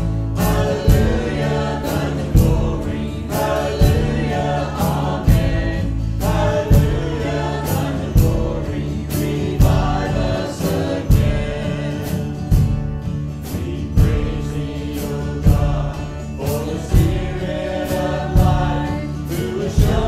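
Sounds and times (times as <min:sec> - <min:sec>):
electric bass: 0:00.0 - 0:20.0
men and women singing: 0:00.0 - 0:20.0
steady beat: 0:00.0 - 0:20.0
strummed acoustic guitar: 0:00.0 - 0:20.0.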